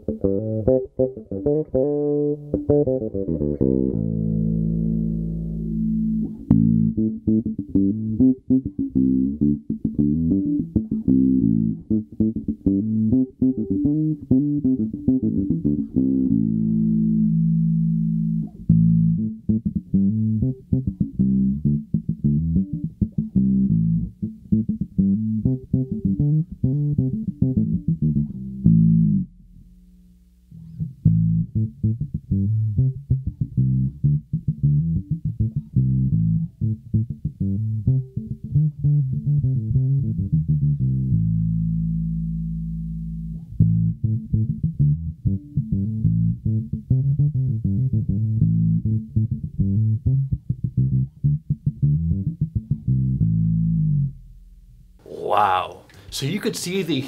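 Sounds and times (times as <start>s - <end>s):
bass guitar plucked notes: 0.0s - 57.0s.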